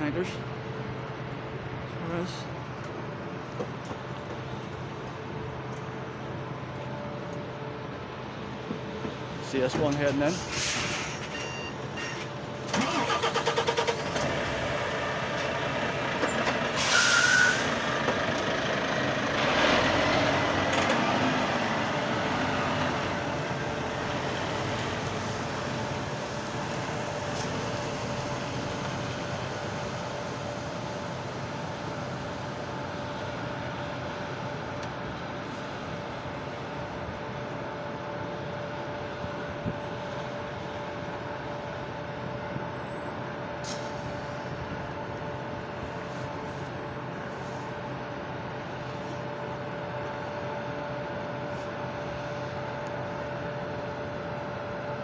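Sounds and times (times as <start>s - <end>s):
air brake hiss: 10.4s - 11.3s, 16.7s - 17.8s, 43.6s - 44.2s
lorry diesel engine pulling away: 12.5s - 31.6s.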